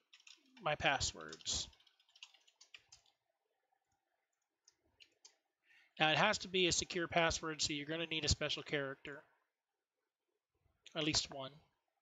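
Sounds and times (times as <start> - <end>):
computer keyboard typing: 0.0 - 3.2.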